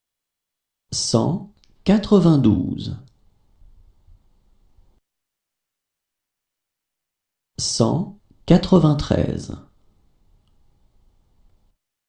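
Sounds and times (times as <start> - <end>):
person speaking: 0.9 - 3.1, 7.6 - 9.8.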